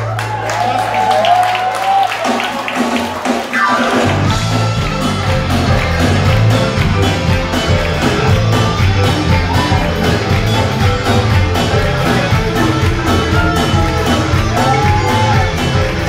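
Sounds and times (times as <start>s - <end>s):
drums: 0.0s - 16.0s.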